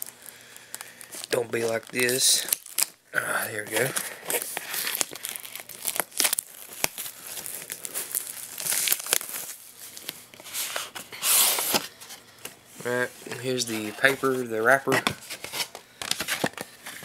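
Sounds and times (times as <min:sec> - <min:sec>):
plastic wrap tearing and crinkling: 0:00.0 - 0:12.2.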